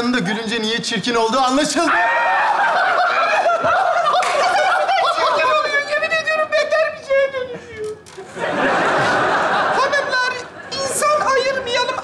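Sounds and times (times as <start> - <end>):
audience laughing: 2.3 - 6.2, 8.2 - 11.8.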